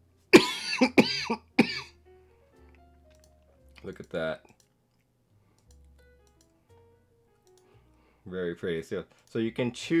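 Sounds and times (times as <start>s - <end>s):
soft background music: 0.0s - 10.0s
man coughing: 0.4s - 1.9s.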